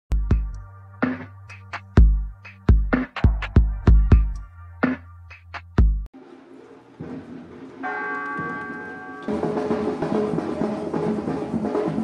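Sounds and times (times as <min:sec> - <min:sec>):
church bell ringing: 0:07.8 - 0:09.9.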